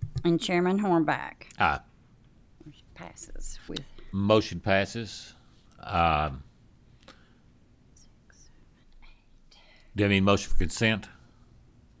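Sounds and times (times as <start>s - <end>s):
man speaking: 1.5s - 1.9s, 4.1s - 6.5s, 10.0s - 11.2s
faint whispering: 8.0s - 10.0s.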